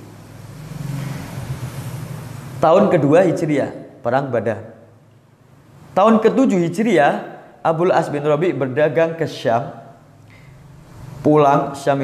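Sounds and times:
vehicle engine humming: 0.0s - 2.6s.

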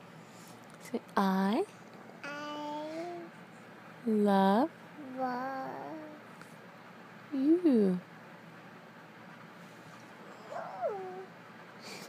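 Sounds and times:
dog whining: 10.0s - 11.3s.

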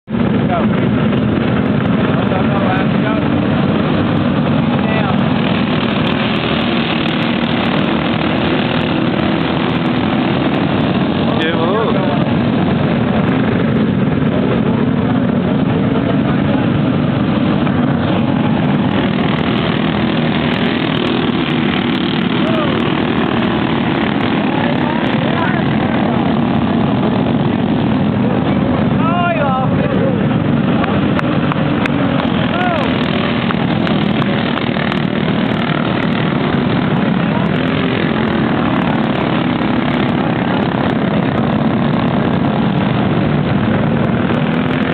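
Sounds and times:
go-kart engines droning: 0.0s - 44.9s.

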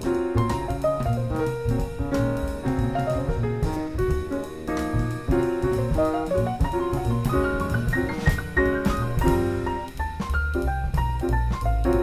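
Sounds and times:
jazz group playing: 0.0s - 12.0s.

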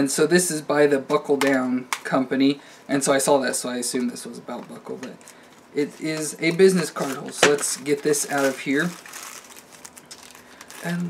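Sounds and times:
plastic wrapper crinkling: 4.7s - 11.0s.

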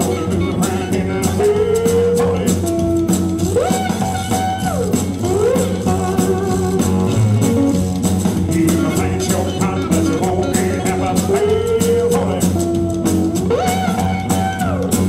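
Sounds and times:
cigar box guitar: 0.0s - 15.0s
drums: 0.0s - 15.0s.

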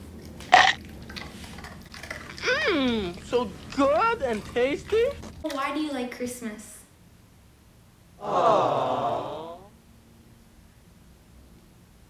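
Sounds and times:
loud burp: 0.5s - 0.8s.

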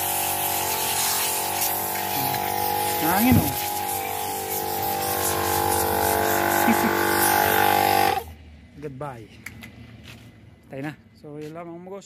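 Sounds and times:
portable air compressor running: 0.0s - 8.4s.

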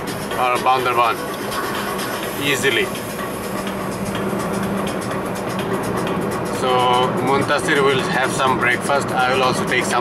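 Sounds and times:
car road and engine noise: 0.0s - 10.0s
music playing: 0.0s - 10.0s.

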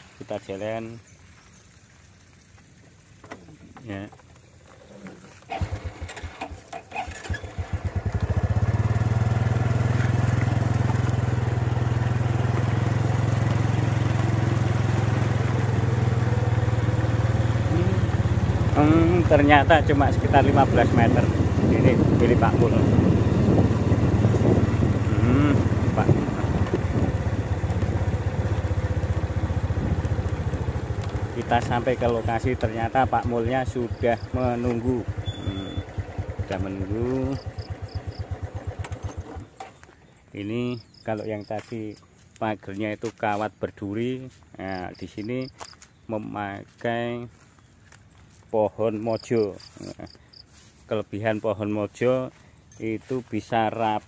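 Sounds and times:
small motorcycle engine running: 4.7s - 40.0s.

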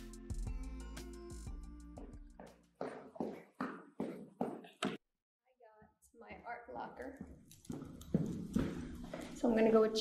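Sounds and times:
footsteps on stairs: 2.0s - 5.0s, 7.2s - 9.8s.

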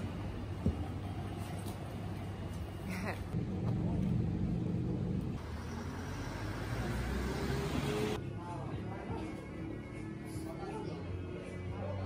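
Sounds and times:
car passing close by: 5.4s - 8.2s.

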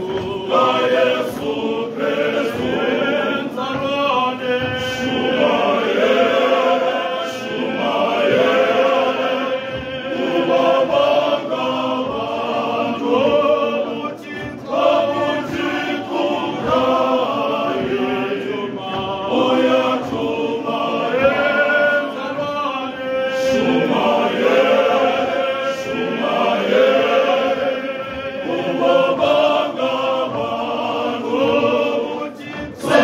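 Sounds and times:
male voice choir singing: 0.0s - 33.0s.

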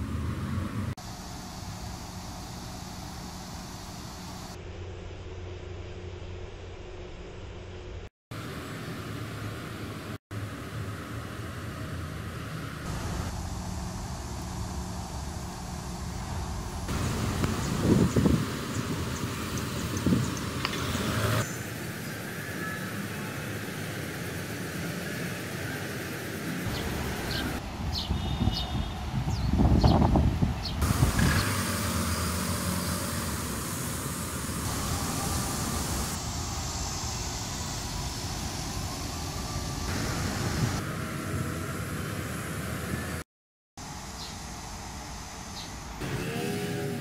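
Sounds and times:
vehicles passing: 0.0s - 4.6s, 8.3s - 43.2s, 43.9s - 47.0s
road traffic hum: 0.0s - 4.7s, 8.3s - 43.2s, 43.8s - 47.0s.

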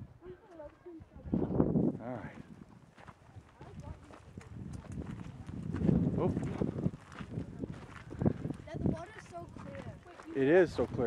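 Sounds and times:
footsteps on rocky dirt trail: 0.5s - 11.0s.

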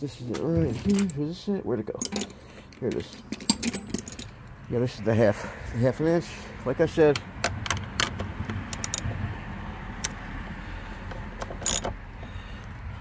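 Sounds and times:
metal clink: 2.0s - 4.4s
socket ratchet clicking: 7.4s - 9.1s, 11.4s - 12.0s.

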